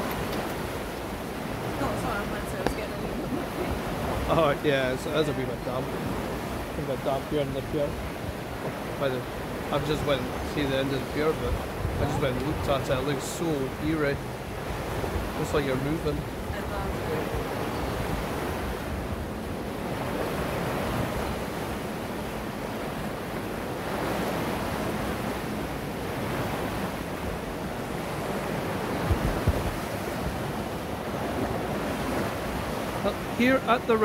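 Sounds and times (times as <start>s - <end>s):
wind on microphone: 0.0s - 33.4s
river water rushing: 0.0s - 34.0s.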